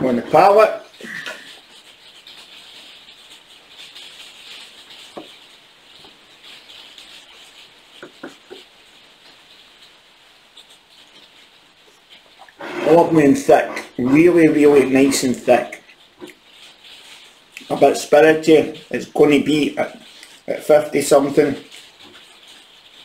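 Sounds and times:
steady low hiss: 0:00.0 - 0:23.0
faint mouth sounds: 0:00.9 - 0:01.6.

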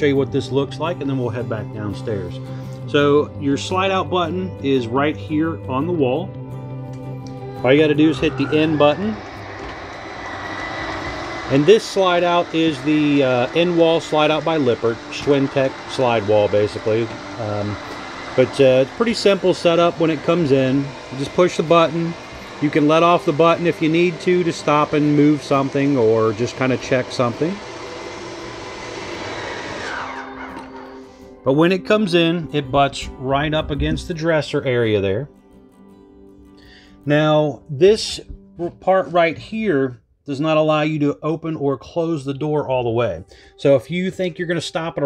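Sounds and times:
slide-out motors humming: 0:06.9 - 0:31.4.

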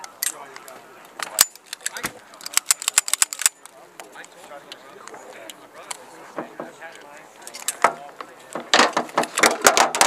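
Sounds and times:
cartridges clicking into magazine: 0:01.3 - 0:03.6.

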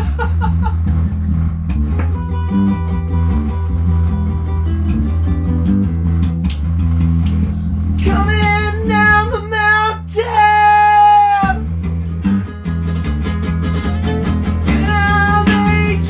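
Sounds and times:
bass line: 0:00.0 - 0:16.0
guitar rock music: 0:00.0 - 0:16.0
high bent melody line: 0:00.0 - 0:16.0.

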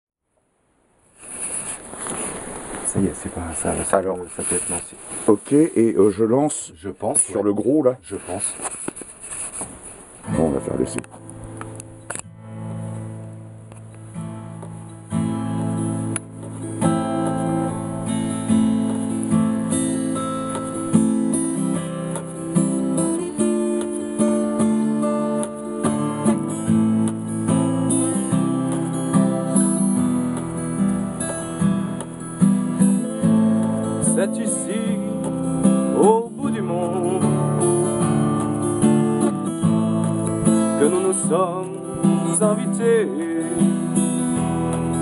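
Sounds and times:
acoustic guitar chords: 0:08.7 - 0:45.0.

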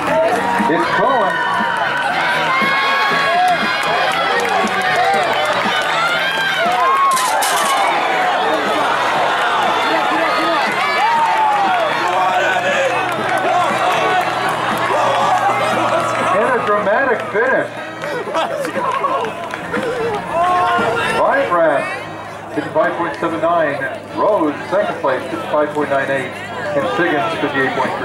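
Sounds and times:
crowd yelling and cheering: 0:00.0 - 0:28.0.

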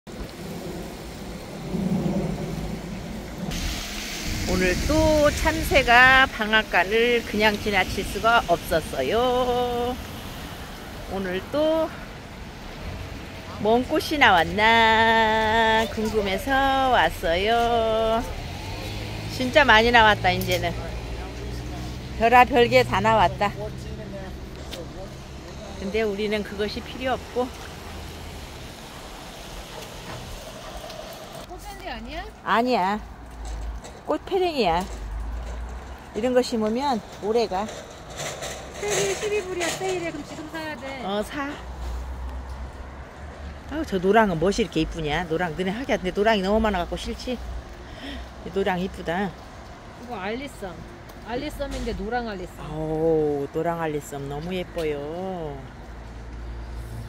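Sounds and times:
light rain on wet pavement: 0:00.1 - 0:57.0
outdoor rumble: 0:00.1 - 0:57.0
hiss: 0:03.4 - 0:05.9.

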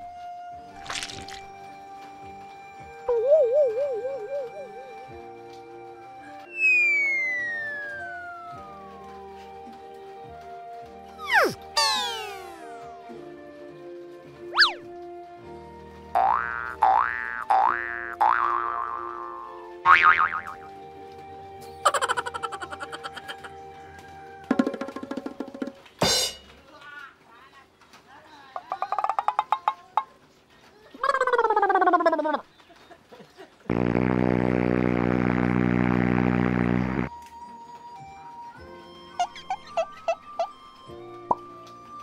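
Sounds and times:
soft background music: 0:00.0 - 0:28.6, 0:37.0 - 0:42.0
whine sliding downward: 0:06.5 - 0:08.9, 0:11.2 - 0:12.9
cartoon boing effects: 0:06.6 - 0:08.0, 0:11.2 - 0:12.8, 0:14.5 - 0:14.8, 0:16.2 - 0:20.6
steady buzzing tone: 0:33.7 - 0:37.1.

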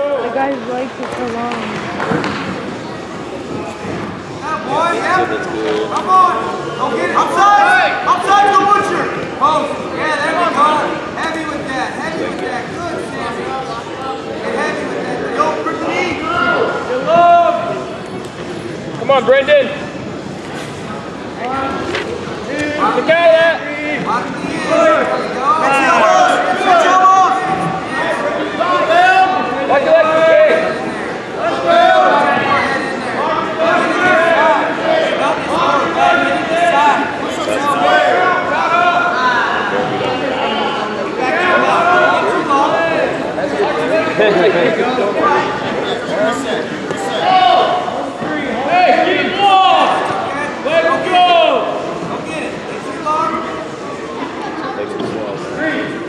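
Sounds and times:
people yelling: 0:04.4 - 0:11.0, 0:22.5 - 0:45.6, 0:47.0 - 0:51.9.

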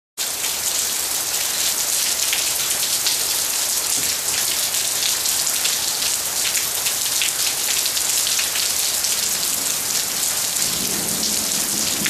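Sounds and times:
heavy rain on driveway and grass: 0:00.2 - 0:12.0.

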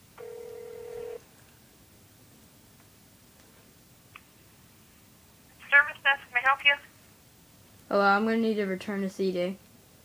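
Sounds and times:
telephone line beep: 0:00.2 - 0:01.2.

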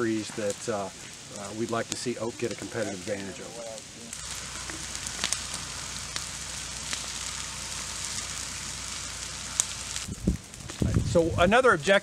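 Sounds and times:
leaf fire hissing and crackling: 0:00.0 - 0:12.0.

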